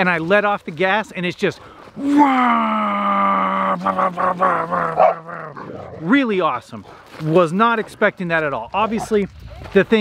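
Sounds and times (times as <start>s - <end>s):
man imitating exhaust burble: 2.0s - 5.6s.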